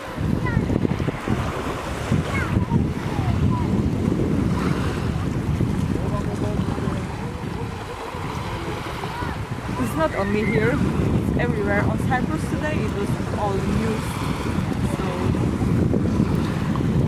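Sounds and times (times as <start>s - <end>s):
small waves washing ashore: 0.0s - 17.0s
wind buffeting microphone: 0.0s - 17.0s.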